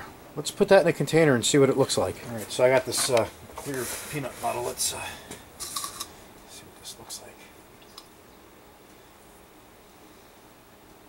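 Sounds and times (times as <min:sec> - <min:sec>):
plastic rustles and scrapes: 0:02.3 - 0:04.9.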